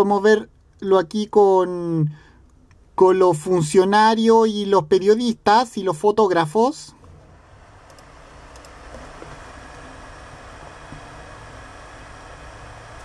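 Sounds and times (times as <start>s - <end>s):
background hiss: 0.0s - 13.0s
low hum: 6.9s - 13.0s
faint clicks: 7.8s - 8.8s.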